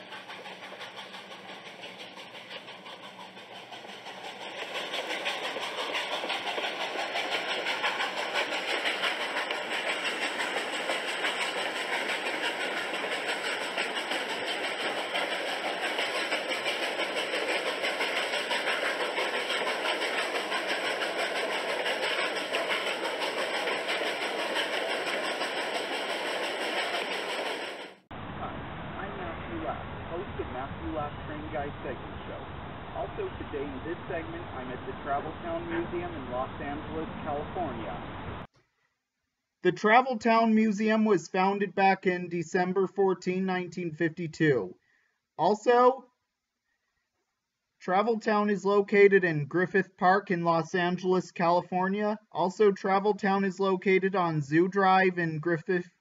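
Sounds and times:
train rumbling on rails: 0.0 - 32.0, 33.0 - 38.5.

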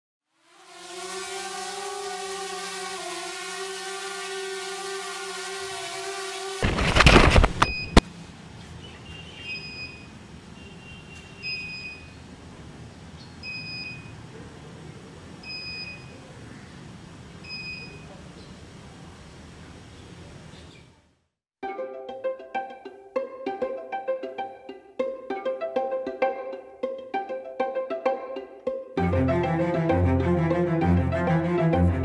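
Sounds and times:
drone propellers whining: 0.4 - 8.0
drone clattering crash: 6.6 - 8.0
short electronic beeps: 7.4 - 8.0, 9.4 - 10.1, 11.4 - 12.1, 13.4 - 14.1, 15.5 - 16.1, 17.5 - 18.0.

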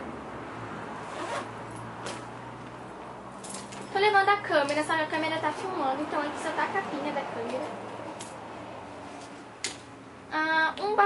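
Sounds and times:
bag zipper pulled: 1.0 - 2.2.

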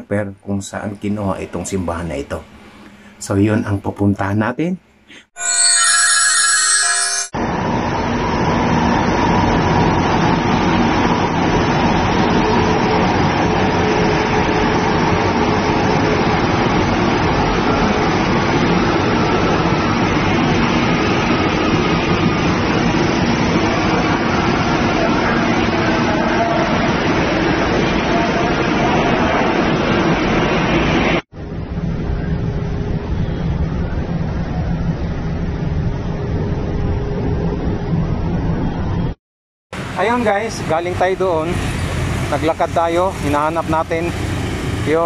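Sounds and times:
train rumbling past: 5.4 - 39.2, 39.8 - 45.0.

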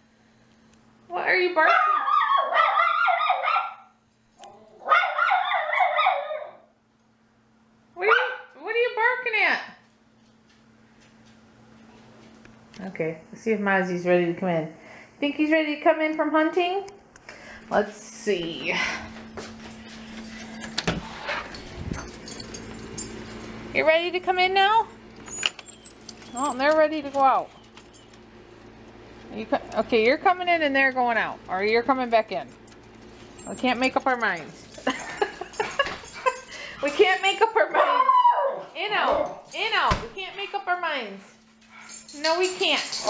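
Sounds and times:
dogs barking: 1.6 - 3.9, 4.8 - 6.7, 8.0 - 8.6, 37.7 - 39.5.

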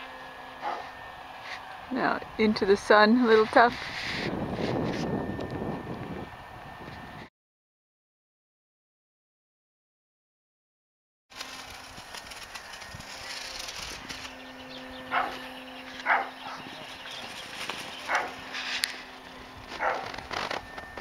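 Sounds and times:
outdoor background noise: 0.0 - 7.3, 11.3 - 21.0
dog barking: 0.6 - 0.9, 15.1 - 15.4, 16.0 - 16.7, 18.1 - 18.4, 19.8 - 20.1.

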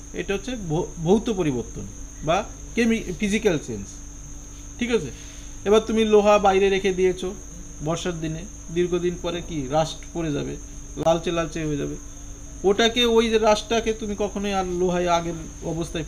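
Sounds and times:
crickets chirping: 0.0 - 16.0
man speaking: 0.2 - 4.0, 4.8 - 12.0, 12.6 - 16.0.

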